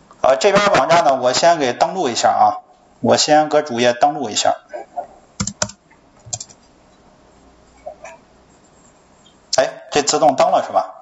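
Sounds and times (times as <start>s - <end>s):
computer keyboard keystrokes: 5.4s - 6.6s.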